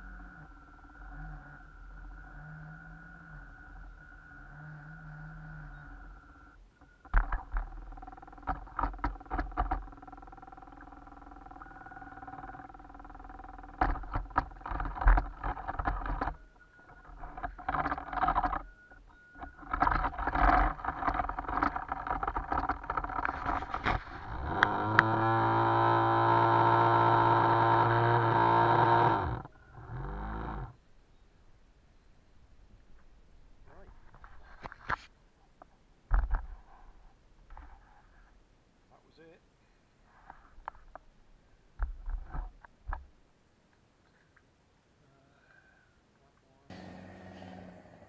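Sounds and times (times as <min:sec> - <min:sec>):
sharp clicks and knocks: 0:06.8 - 0:25.3
toy boat motor whirring: 0:07.2 - 0:18.7, 0:19.4 - 0:30.8.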